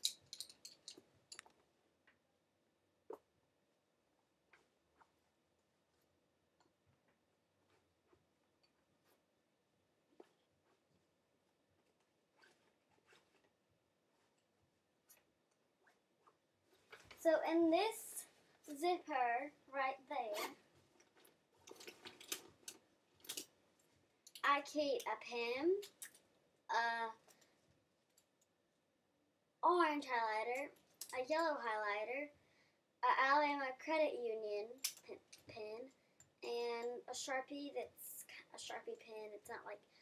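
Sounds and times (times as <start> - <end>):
backpack fabric rustling: 11.8 - 13.6.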